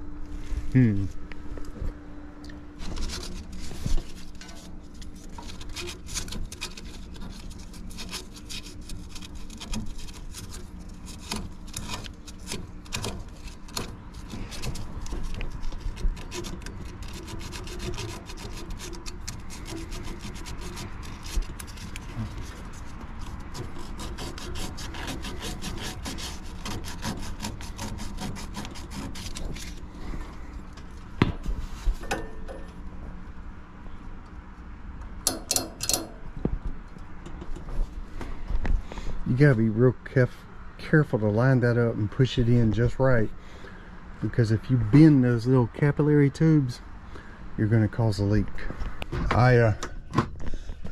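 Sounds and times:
wires and metal clicking and scraping: 0.8s - 33.2s, 33.8s - 40.2s.

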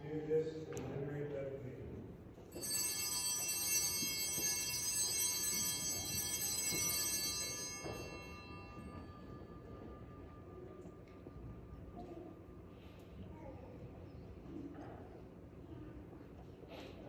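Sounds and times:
altar bells ringing: 2.5s - 12.0s.

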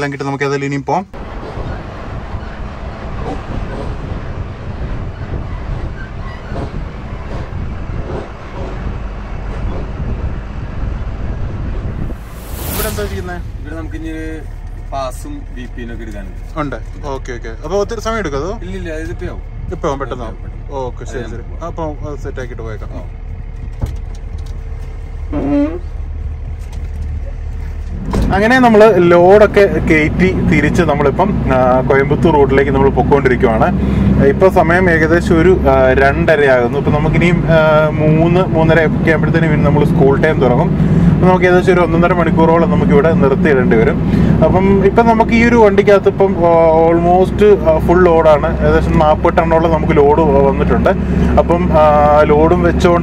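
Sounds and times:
truck engine and road rumble: 0.0s - 53.0s
rattles and clunks: 23.5s - 25.0s.

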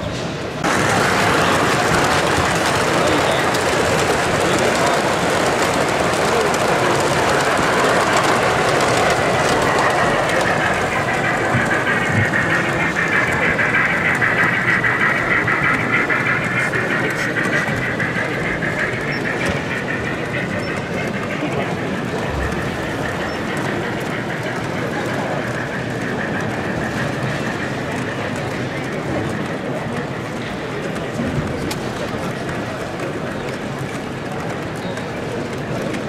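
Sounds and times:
model trains rolling whir: 0.0s - 36.0s.

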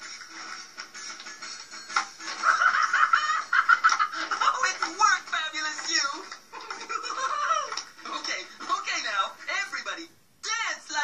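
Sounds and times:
cartoon cackling: 2.4s - 4.3s.

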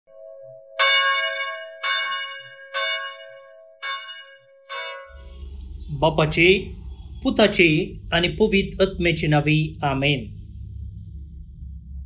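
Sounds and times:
bell ringing: 0.8s - 5.2s
steady humming tone: 4.9s - 12.0s.

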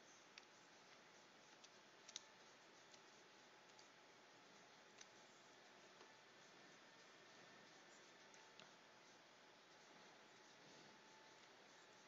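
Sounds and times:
computer mouse clicks: 0.3s - 4.0s, 4.8s - 5.3s.

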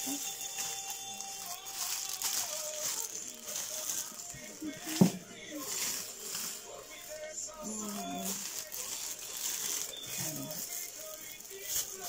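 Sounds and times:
plastic bag crinkling: 0.0s - 12.0s.

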